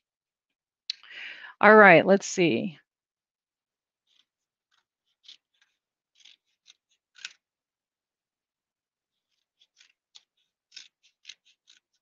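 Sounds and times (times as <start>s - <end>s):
scissors snipping paper: 4.0s - 7.5s, 9.2s - 12.0s.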